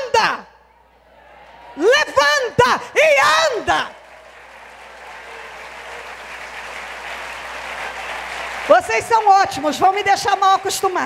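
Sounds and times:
congregation applauding: 3.0 - 11.0.

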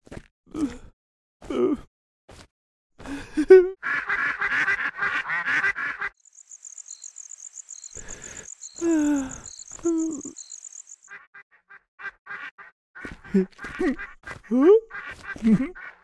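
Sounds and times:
ducks quacking: 3.8 - 6.2
crickets chirping: 6.2 - 11.1.

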